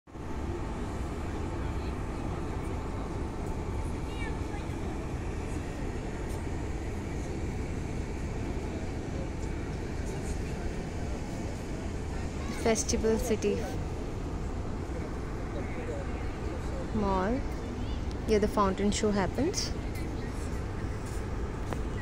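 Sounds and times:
low city rumble: 0.1 - 22.0
distant faint voices: 0.2 - 22.0.

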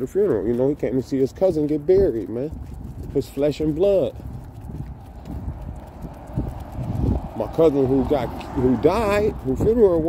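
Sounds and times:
footsteps on concrete: 0.0 - 10.0
low rumble: 2.5 - 9.9.

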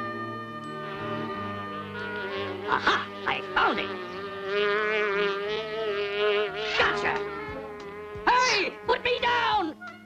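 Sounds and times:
cartoon fly buzzing: 0.6 - 9.6.

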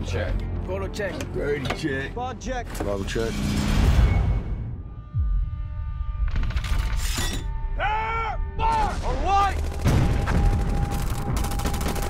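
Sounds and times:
machine-gun fire: 9.5 - 12.0.

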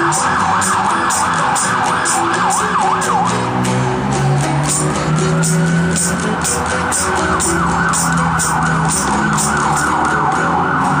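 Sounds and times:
siren wailing: 0.0 - 11.0
strummed stringed instrument: 0.0 - 11.0.

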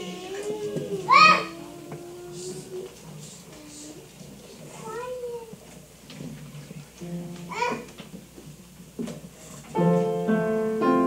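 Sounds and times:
child's high-pitched vocal sound: 0.0 - 2.9, 7.5 - 7.9
faint low murmuring: 0.0 - 8.0.

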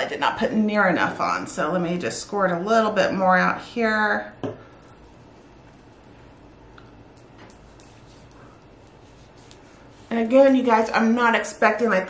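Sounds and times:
rubbing of fingertips on skin: 7.6 - 11.0.

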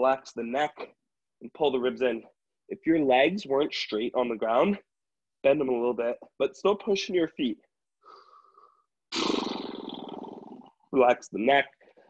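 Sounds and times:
person rasping exhale: 8.0 - 10.6.

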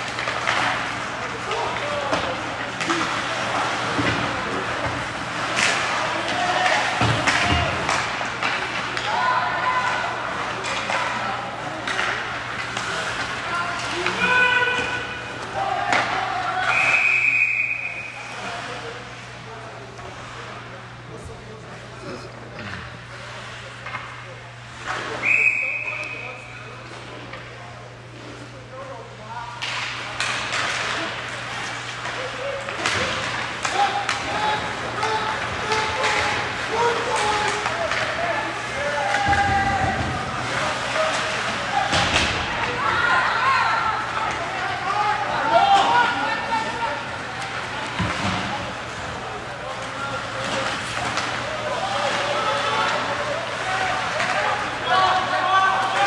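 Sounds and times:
sticks and puck clacking on ice: 0.0 - 16.9, 29.5 - 43.1, 44.0 - 56.0
voices of players and spectators: 0.0 - 56.0
whistle blast: 16.7 - 18.2, 25.2 - 26.3.

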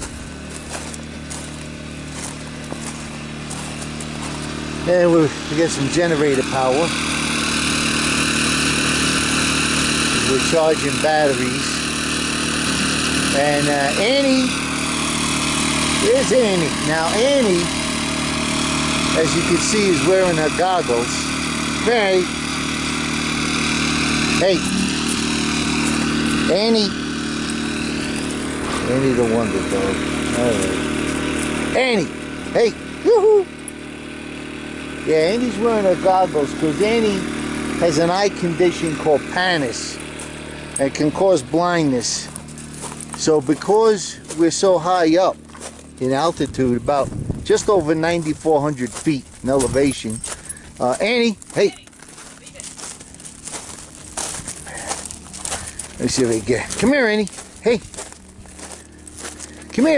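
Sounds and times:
generator engine humming: 0.0 - 59.9.

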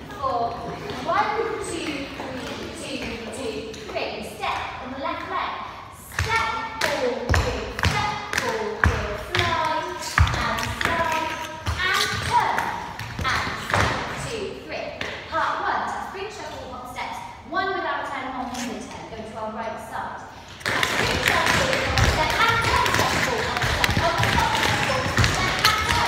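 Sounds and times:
dance shoes tapping on hard floor: 20.6 - 26.0.

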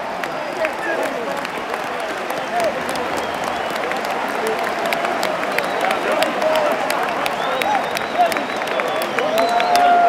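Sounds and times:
crowd clapping: 0.0 - 10.0
crowd voices: 0.0 - 10.0.

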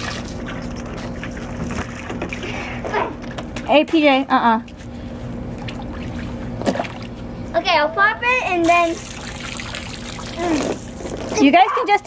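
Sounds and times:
water pouring and spattering: 8.6 - 11.4.

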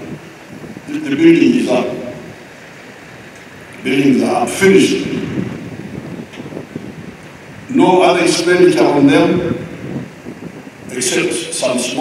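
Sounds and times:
voice echo over loudspeaker: 0.0 - 2.5, 3.8 - 5.5, 7.7 - 9.8, 10.8 - 12.0
wind rumble on microphone: 0.0 - 12.0.

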